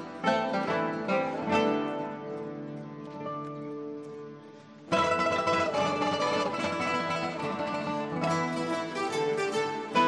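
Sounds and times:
classical guitar ensemble playing: 0.0 - 10.0.

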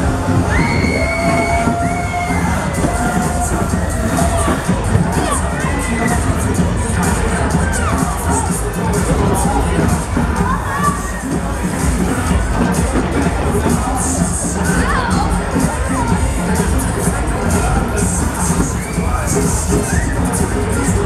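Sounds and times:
loud music with bass beat: 0.0 - 21.0
riders screaming and shouting: 0.0 - 21.0.

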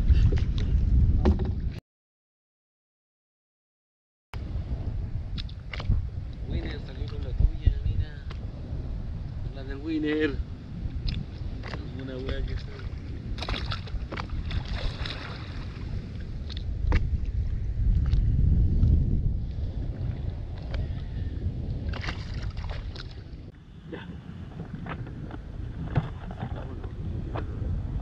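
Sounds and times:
wind buffeting microphone: 0.0 - 1.8, 4.4 - 28.0.

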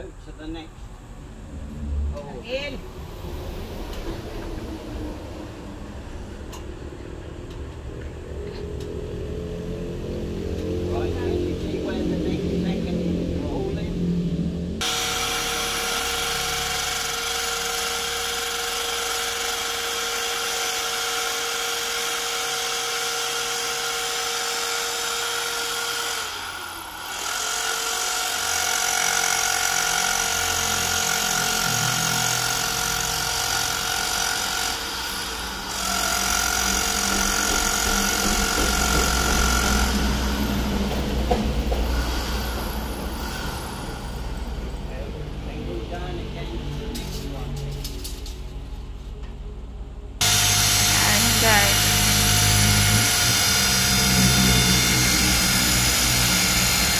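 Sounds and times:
deeper drill rumble: 0.0 - 20.4, 23.3 - 48.0, 50.1 - 56.9
electric drill whining: 14.8 - 44.6, 50.2 - 56.9.

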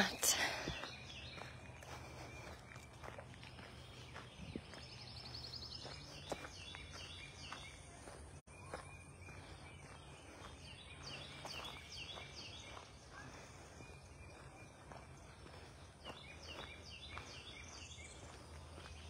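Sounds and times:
faint birdsong: 0.0 - 19.0
soft footsteps: 0.5 - 13.0.

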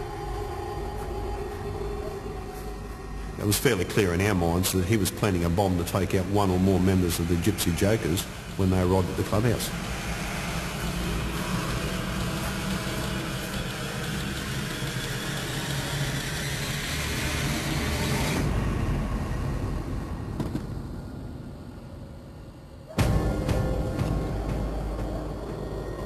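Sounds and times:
steady low rumble: 0.0 - 15.6.

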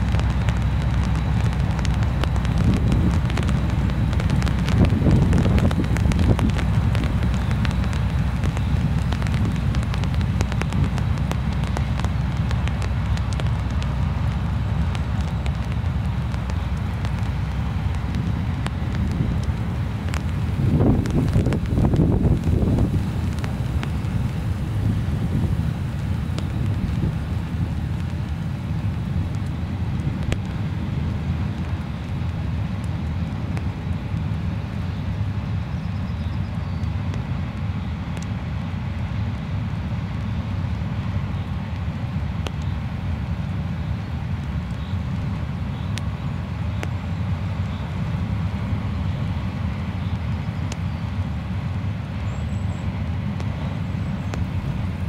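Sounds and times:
faint clicks: 0.0 - 25.0, 38.2 - 38.4, 53.4 - 54.8
wind on microphone: 0.0 - 32.4, 53.4 - 55.0
train wheels rumbling on rails: 0.0 - 55.0.

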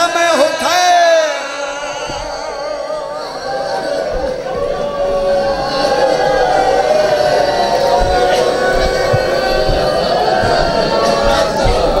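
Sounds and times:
voices chanting a lament: 0.0 - 12.0
dull low thumps: 3.4 - 12.0.

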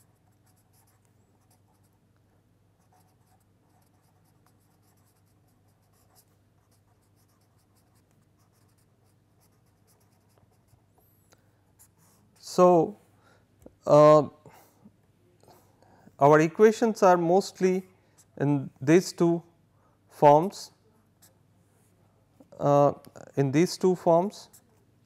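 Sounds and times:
marker scratching on paper: 0.0 - 2.0, 2.8 - 11.0, 24.4 - 24.8
faint low hum: 0.0 - 25.0.

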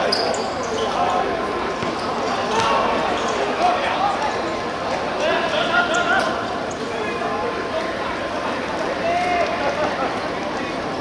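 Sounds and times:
players calling out: 0.0 - 10.9.

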